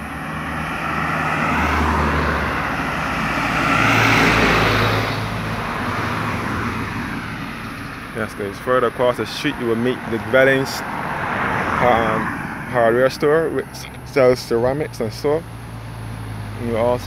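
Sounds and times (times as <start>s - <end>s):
cars driving past: 0.0s - 17.0s.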